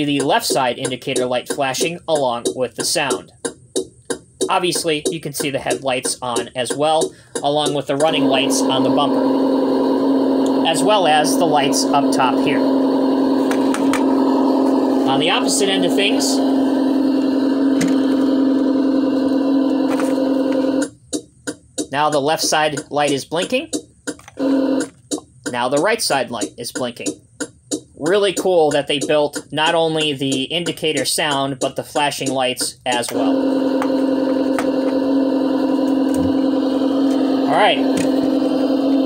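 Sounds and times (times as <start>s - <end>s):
electronic engine sound drone: 0.0s - 3.8s, 4.4s - 21.0s, 21.8s - 39.0s.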